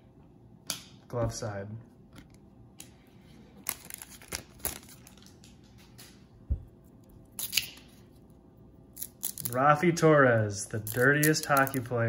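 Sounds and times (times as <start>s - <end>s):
foil wrapper crinkling: 3.6s - 5.6s.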